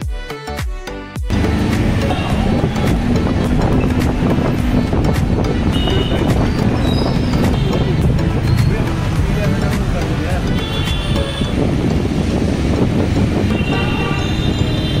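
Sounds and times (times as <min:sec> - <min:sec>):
music: 0:00.0 - 0:15.0
road traffic rumble: 0:01.3 - 0:15.0
voices: 0:13.4 - 0:15.0.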